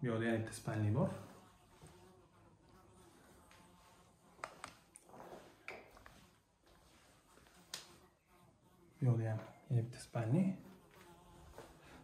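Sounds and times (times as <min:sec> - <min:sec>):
man speaking: 0:00.0 - 0:01.3, 0:09.0 - 0:10.7.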